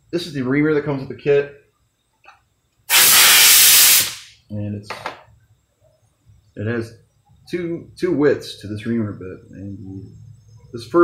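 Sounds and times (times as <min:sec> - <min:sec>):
compressed air blow gun hissing: 0:02.9 - 0:04.3.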